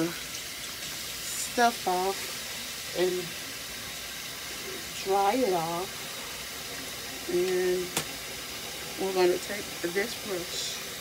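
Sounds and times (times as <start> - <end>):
tap water running into sink: 0.0 - 11.0.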